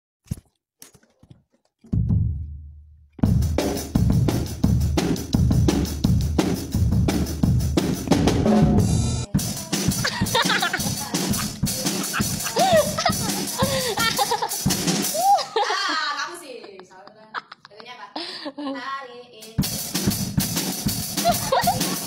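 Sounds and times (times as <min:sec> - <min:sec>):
fast drum kit beat: 0:03.2 - 0:16.3, 0:19.4 - 0:22.0.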